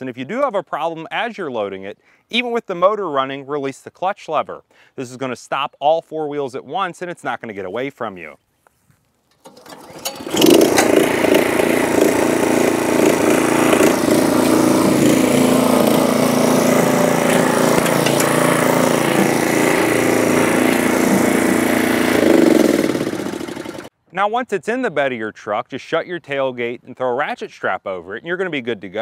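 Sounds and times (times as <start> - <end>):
small gas engine running: 9.4 - 23.9.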